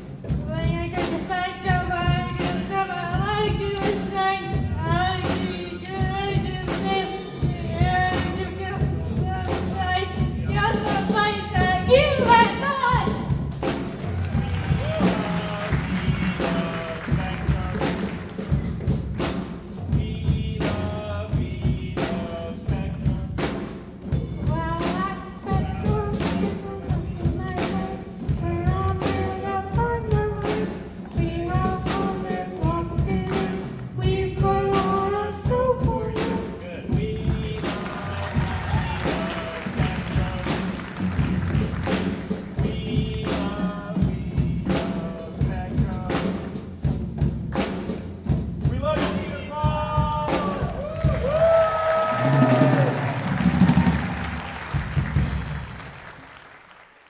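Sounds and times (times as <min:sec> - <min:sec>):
live band music: 0:00.0 - 0:57.0
steady drum beat: 0:00.0 - 0:57.0
person singing into a microphone: 0:24.2 - 0:40.7.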